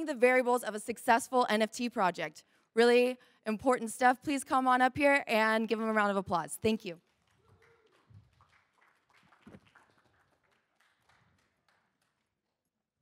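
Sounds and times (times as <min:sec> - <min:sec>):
audience applause: 0:07.3 - 0:12.1.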